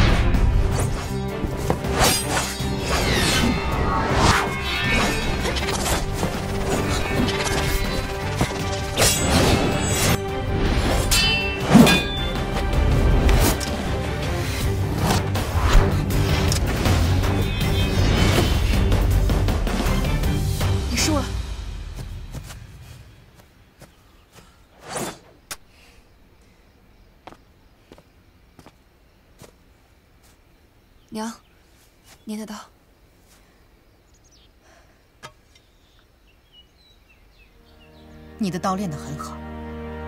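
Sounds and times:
background music: 0.0s - 23.0s, 37.5s - 40.0s
sword hits and swishes: 11.0s - 12.2s
sword whooshing through air: 24.8s - 25.4s.

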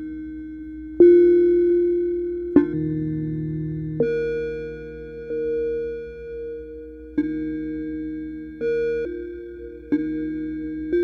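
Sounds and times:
ambient synth drone music: 0.0s - 11.0s.

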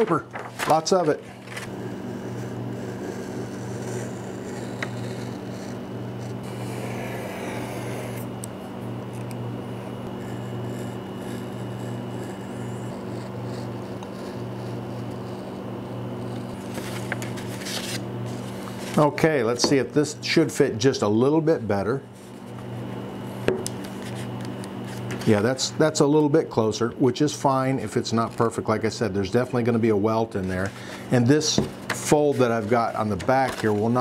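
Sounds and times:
paper scraping and rustling: 0.0s - 1.7s, 16.5s - 19.1s, 31.8s - 34.0s
steady low hum: 0.0s - 34.0s
utility knife cutting paper: 2.8s - 8.3s, 10.0s - 15.6s, 32.0s - 34.0s.

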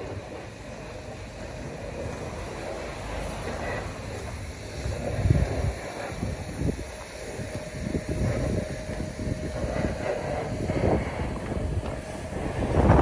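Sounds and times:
wind gusting on microphone: 0.0s - 13.0s.

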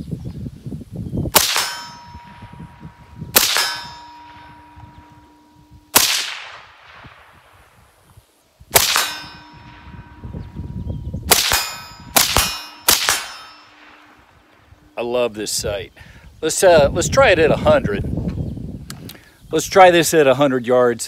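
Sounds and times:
suppressed rifle shots: 1.3s - 7.6s, 8.7s - 10.2s, 11.3s - 14.6s
steel target plate ringing: 1.4s - 6.4s, 8.8s - 15.2s.

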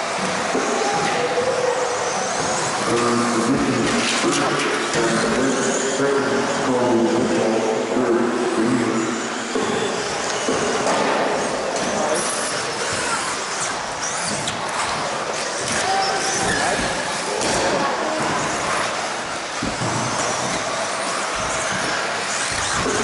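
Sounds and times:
rc car motors whining: 0.0s - 6.7s, 8.5s - 23.0s
murmur of voices: 0.0s - 23.0s.

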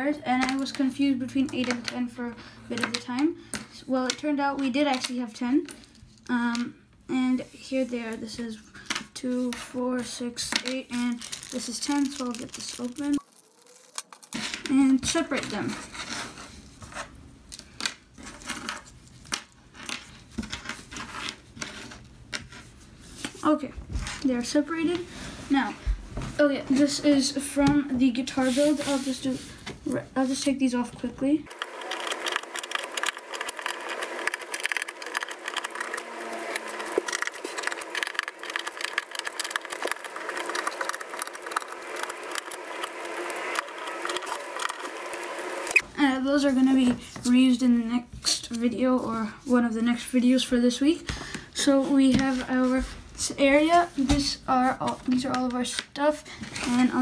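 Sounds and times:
small ticks and crackles: 10.6s - 14.4s, 31.5s - 45.8s.

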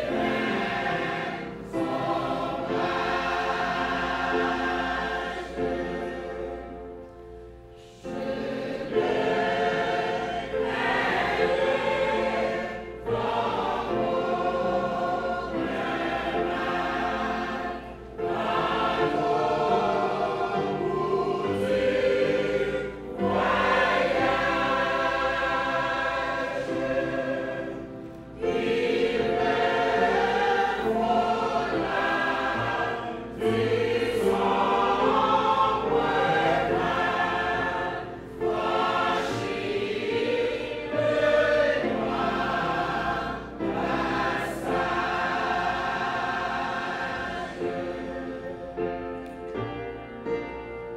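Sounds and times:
church choir singing: 0.0s - 50.9s.

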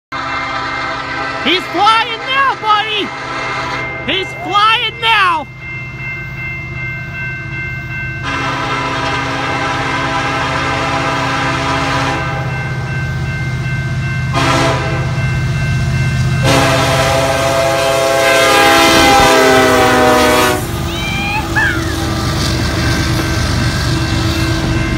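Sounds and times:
locomotive horn blasts: 0.1s - 3.9s, 8.2s - 12.6s, 14.3s - 15.2s, 16.4s - 20.9s
crossing bell ringing: 0.2s - 24.9s.

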